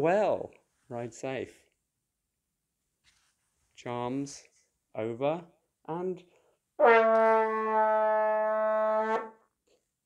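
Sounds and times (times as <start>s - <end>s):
steady brass-like horn note: 6.8s - 9.4s.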